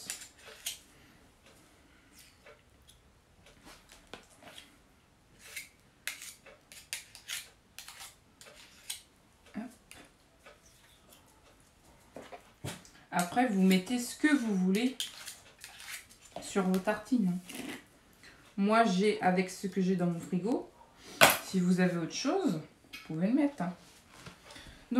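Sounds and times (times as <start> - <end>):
metal spoons clicking and scraping: 5.4 - 9.1, 13.2 - 16.3.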